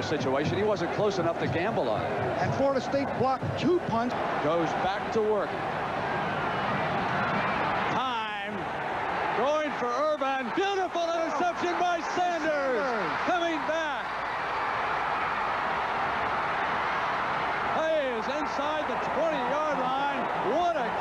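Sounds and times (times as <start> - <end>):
stadium crowd din: 0.0 - 21.0
man commentating: 9.3 - 14.1, 17.7 - 21.0.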